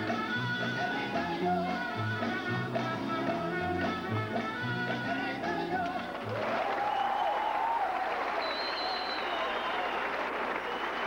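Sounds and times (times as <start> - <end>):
audience applauding: 5.8 - 11.0
crowd cheering: 6.1 - 11.0.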